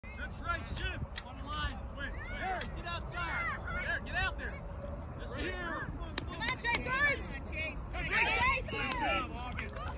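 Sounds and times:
crowd shouting: 2.0s - 3.9s.

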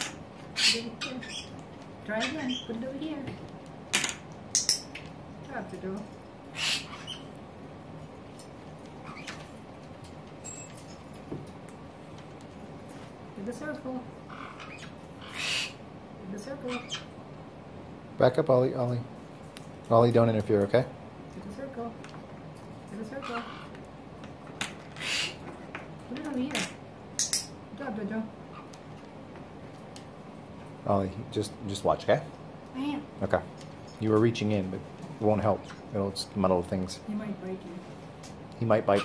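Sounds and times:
parrot calling: 0.0s - 3.0s, 6.4s - 7.5s, 8.9s - 9.6s, 13.9s - 17.2s, 23.0s - 23.9s, 24.6s - 25.6s, 28.3s - 28.9s, 38.8s - 39.0s.

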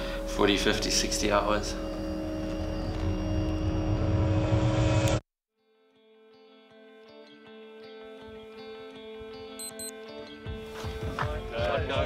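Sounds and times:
musical drone: 0.0s - 5.2s.

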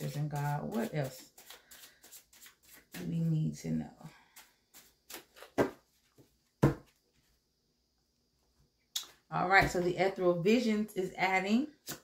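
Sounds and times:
cards being shuffled: 0.0s - 3.1s, 4.3s - 5.8s.

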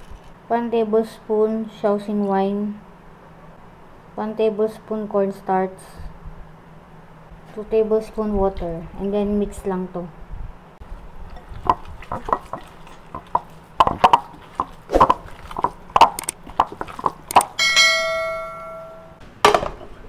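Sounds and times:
spatula knocking against glass bowl: 11.6s - 14.8s
bell-like chime: 17.6s - 19.2s.

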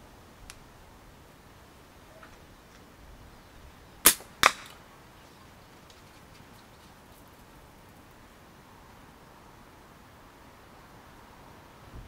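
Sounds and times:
steel ball hitting target: 4.0s - 4.8s.

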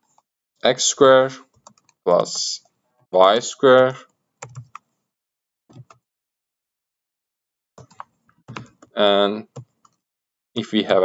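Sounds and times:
keyboard typing: 1.5s - 2.0s, 4.4s - 4.9s, 5.7s - 6.0s, 7.8s - 10.0s.

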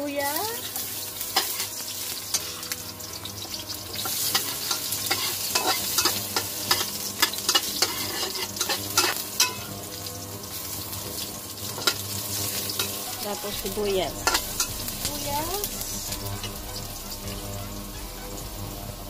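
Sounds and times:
garlic sizzling in hot oil: 0.0s - 19.0s
metal spatula scraping wok: 0.5s - 9.8s, 10.6s - 19.0s.

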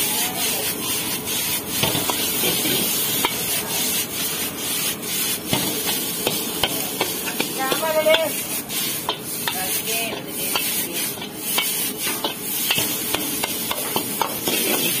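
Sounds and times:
food sizzling: 0.0s - 15.0s
metal ladle scraping a wok: 0.2s - 15.0s.

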